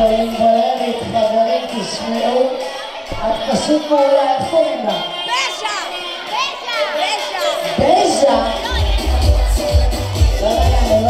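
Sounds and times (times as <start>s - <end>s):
children shouting and cheering: 0.0s - 11.0s
dance music: 0.0s - 11.0s.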